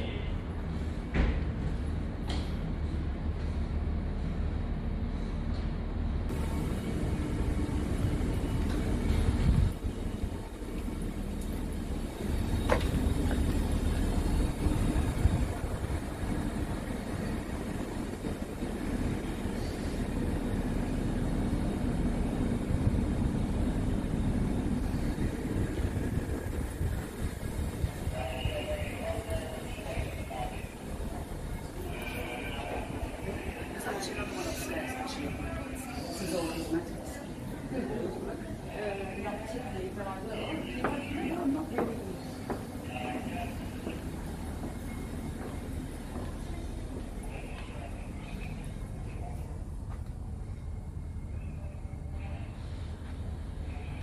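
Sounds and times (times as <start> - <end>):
ferry machinery rumble and hum: 0.0 - 54.0
walking and handling noise: 8.1 - 20.4, 22.7 - 37.2, 39.2 - 50.7.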